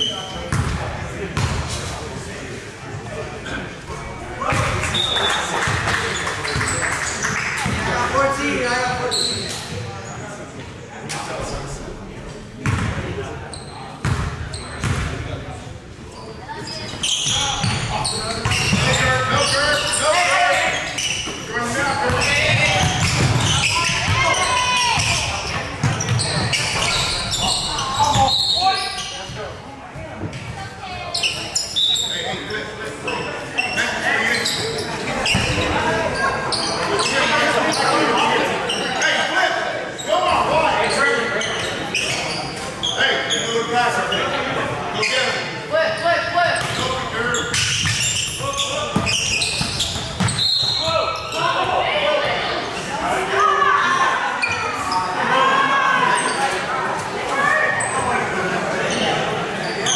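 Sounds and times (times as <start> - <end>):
voices echoing in gymnasium: 0.0 - 59.9.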